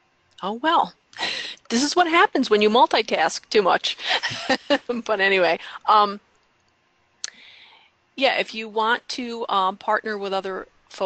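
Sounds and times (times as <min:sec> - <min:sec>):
soft hiss: 0:00.0 - 0:11.0.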